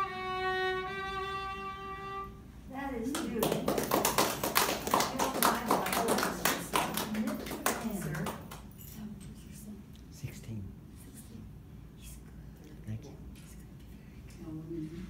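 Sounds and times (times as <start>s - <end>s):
held violin note: 0.0s - 2.5s
voices: 2.7s - 9.8s
audience clapping: 3.1s - 8.8s.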